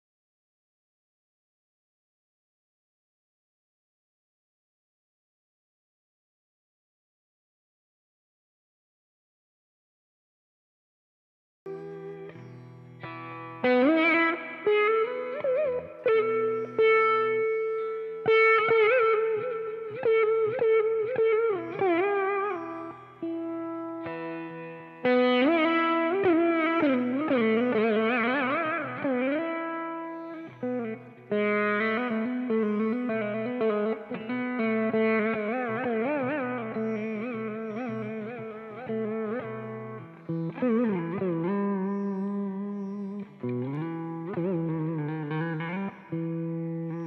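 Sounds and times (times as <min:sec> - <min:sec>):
veena plucked notes with pitch bends: 0:11.7 - 0:47.0.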